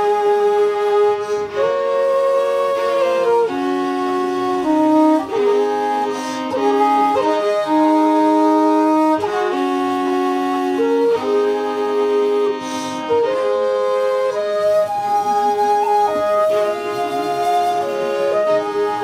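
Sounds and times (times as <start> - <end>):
fiddle: 0.0 - 19.0
flute: 0.0 - 19.0.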